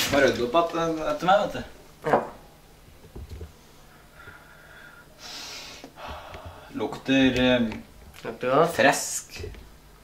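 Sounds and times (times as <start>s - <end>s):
person sniffing: 5.2s - 6.4s.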